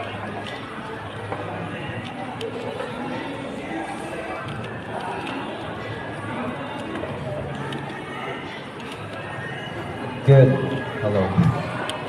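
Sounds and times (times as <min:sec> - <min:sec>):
background chatter in a hall: 0:00.0 - 0:12.0.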